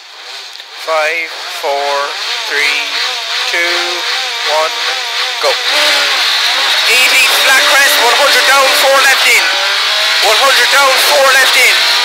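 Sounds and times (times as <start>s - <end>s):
rally car engine revving: 0.0s - 12.0s.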